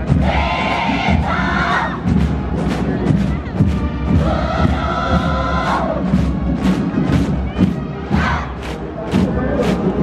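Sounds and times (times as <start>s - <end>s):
music with low thumps: 0.0s - 10.0s
voices singing in unison: 4.2s - 6.0s.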